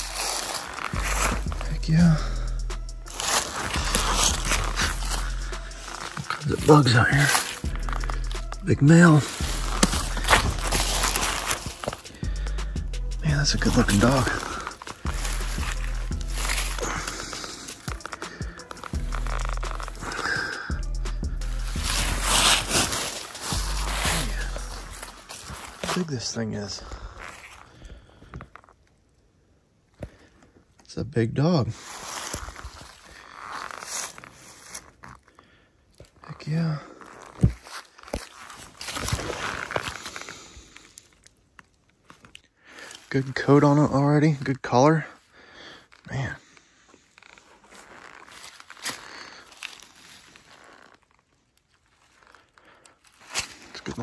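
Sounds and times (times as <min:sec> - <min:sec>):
footsteps in dry leaves: 0:00.0 - 0:28.7, 0:31.7 - 0:35.5, 0:36.4 - 0:44.4, 0:45.2 - 0:54.0
sharp crackle: 0:00.0 - 0:29.3, 0:31.8 - 0:44.4, 0:45.6 - 0:54.0.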